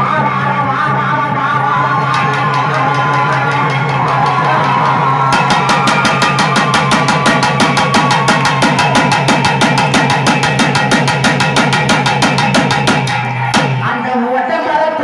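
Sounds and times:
woman singing: 0:00.0 - 0:04.6, 0:13.8 - 0:15.0
barrel drum: 0:02.1 - 0:13.9
fast even drumbeat: 0:02.1 - 0:13.9.

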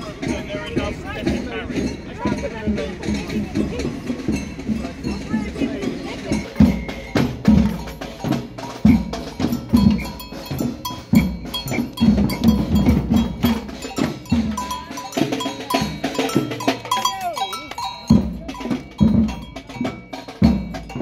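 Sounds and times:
deep bass drum: 0:00.0 - 0:21.0
snare drums: 0:00.0 - 0:21.0
metal bell clanking: 0:00.1 - 0:21.0.

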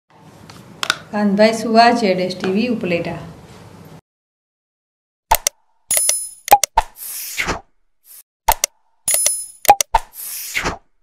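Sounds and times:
sharp clicks and pops: 0:05.3 - 0:07.0, 0:08.5 - 0:10.2.

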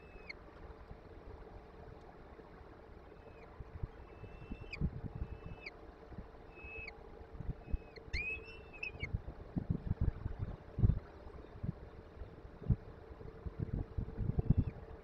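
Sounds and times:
faint steady hum: 0:00.0 - 0:15.0
falcon chicks begging calls: 0:07.7 - 0:09.1.

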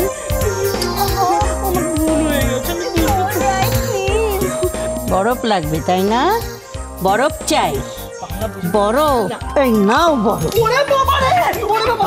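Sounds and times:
comic music with pulsing bass: 0:00.0 - 0:12.0.

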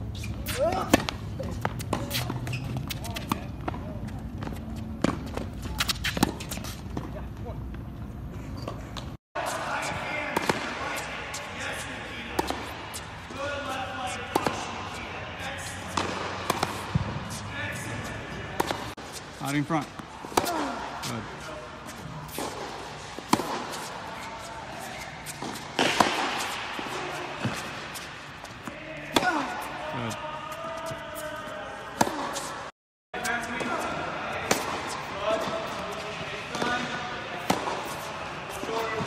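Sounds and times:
tennis balls struck by rackets: 0:00.4 - 0:07.2, 0:09.0 - 0:15.0, 0:15.6 - 0:19.0, 0:19.8 - 0:29.9, 0:31.9 - 0:32.6, 0:33.2 - 0:39.0
balls bouncing on hard court: 0:00.4 - 0:07.8, 0:09.8 - 0:12.8, 0:15.8 - 0:21.2, 0:24.8 - 0:30.1, 0:33.2 - 0:38.0.

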